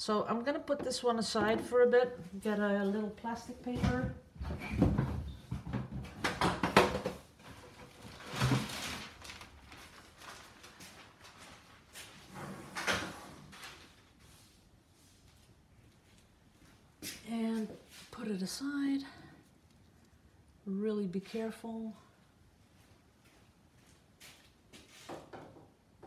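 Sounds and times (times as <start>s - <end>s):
plastic sheet rustling: 7.4s - 12.4s, 13.3s - 14.6s.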